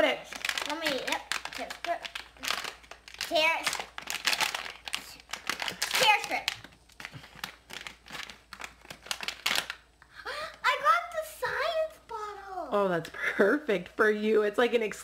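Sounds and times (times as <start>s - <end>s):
plastic packet tearing and crinkling: 0.2s - 10.0s.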